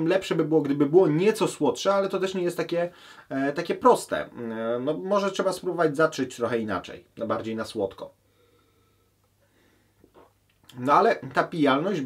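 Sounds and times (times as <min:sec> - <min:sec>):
faint breathing: 0:02.9 - 0:03.3, 0:08.2 - 0:10.2.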